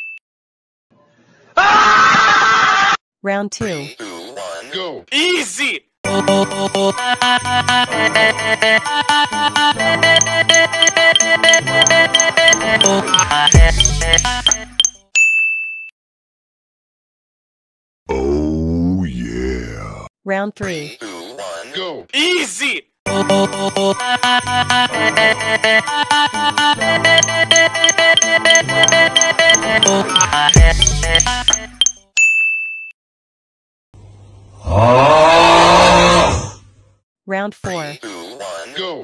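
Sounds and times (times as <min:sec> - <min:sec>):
background music with bell-like notes: 0:09.9 - 0:15.6, 0:26.9 - 0:32.4.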